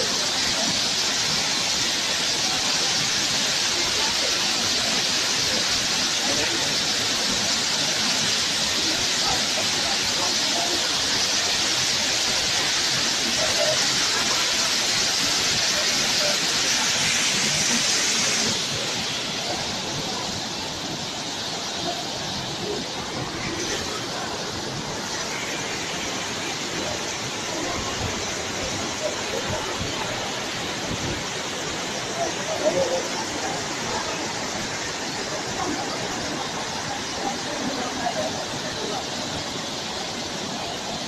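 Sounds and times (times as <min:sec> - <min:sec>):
waterfall rushing: 0:00.0 - 0:41.0.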